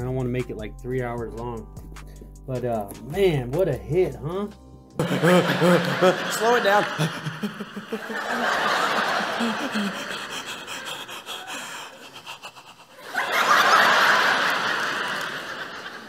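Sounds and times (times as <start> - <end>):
audience laughing: 5.0 - 16.0.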